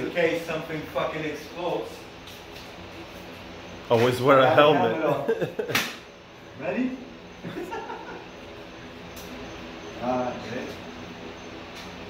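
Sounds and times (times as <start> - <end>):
man chuckling: 5.0 - 5.8, 7.4 - 8.3.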